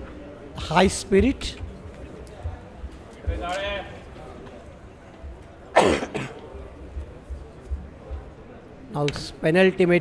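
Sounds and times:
man coughing: 5.7 - 6.4.

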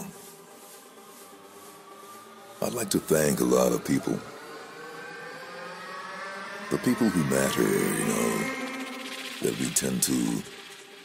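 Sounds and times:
sustained synth drone: 0.0 - 11.0
spoken-word vocal: 6.7 - 8.6.

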